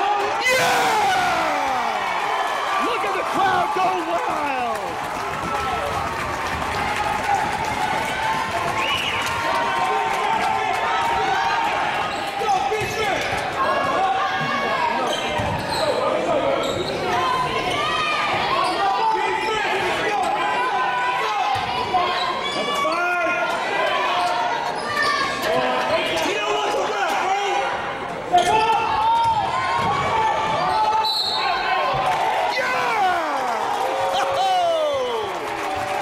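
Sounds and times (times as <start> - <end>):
spectators chattering and calling: 0.0 - 36.0
sneakers squeaking: 15.0 - 17.9.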